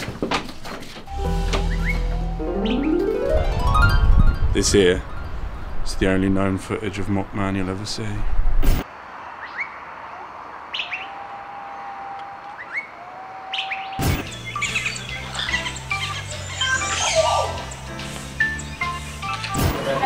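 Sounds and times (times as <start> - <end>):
birds chirping: 1.1 - 3.3, 4.5 - 8.0, 8.9 - 20.0.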